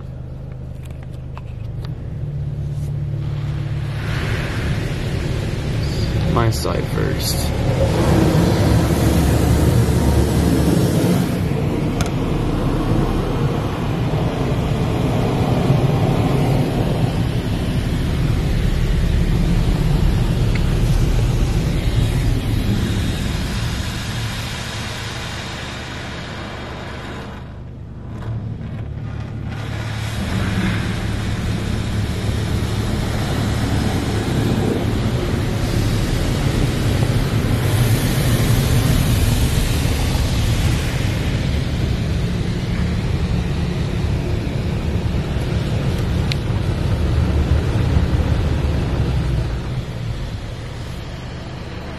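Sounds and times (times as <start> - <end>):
low machine hum: 0.0 - 51.9
water spray hissing and drumming: 2.4 - 27.7, 29.2 - 51.9.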